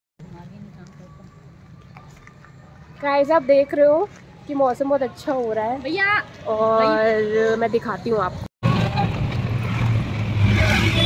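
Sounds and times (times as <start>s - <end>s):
low road hum: 0.2s - 11.0s.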